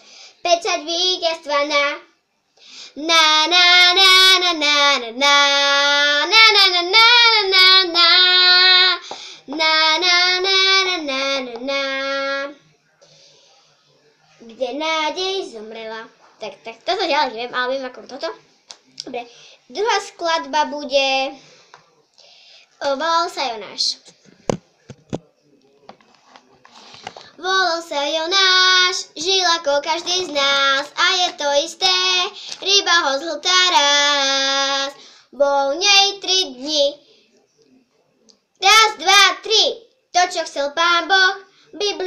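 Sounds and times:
quick breath: 0.0s - 0.4s, 2.6s - 3.0s, 9.0s - 9.5s, 21.4s - 22.8s, 35.0s - 35.3s
girl singing unaccompanied: 0.4s - 2.1s, 2.9s - 12.6s, 14.4s - 18.4s, 27.4s - 37.0s, 38.6s - 42.0s.

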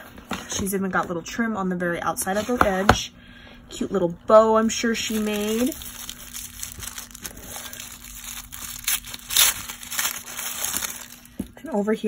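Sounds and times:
tissue paper crinkling: 5.0s - 11.5s.

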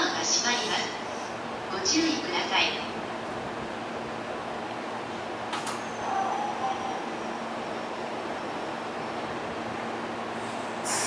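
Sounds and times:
electric train equipment humming: 0.0s - 11.0s
faint tone: 5.7s - 7.3s.

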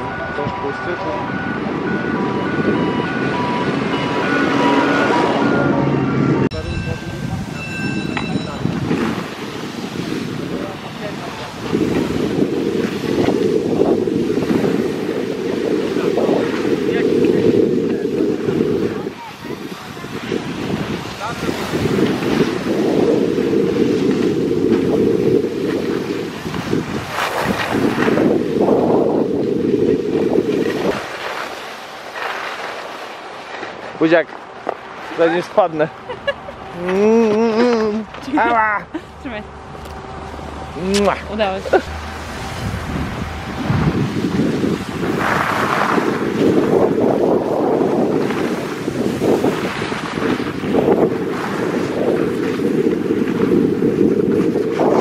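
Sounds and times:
wind buffeting microphone: 0.0s - 32.4s, 33.5s - 55.0s.

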